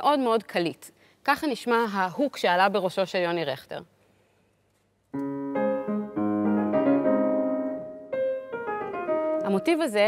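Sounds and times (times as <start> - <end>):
grand piano melody: 5.2 - 10.0.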